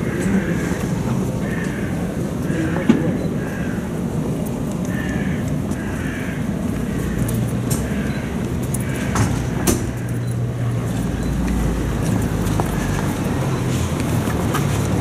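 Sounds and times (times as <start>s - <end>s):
faint voices murmuring: 0.0s - 15.0s
street noise: 0.0s - 15.0s.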